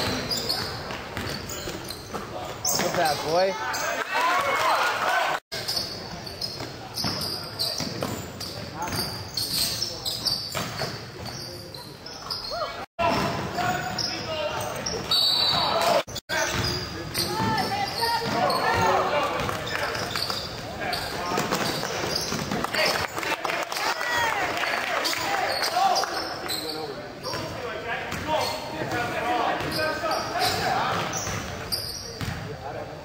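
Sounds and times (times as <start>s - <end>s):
voices in a gym hall: 0.0s - 33.0s.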